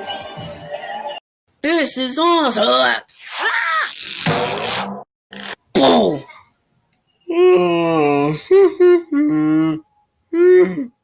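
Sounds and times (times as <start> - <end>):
cartoon yelp: 3.3 - 4.0
falling groan-like cry: 7.3 - 11.0.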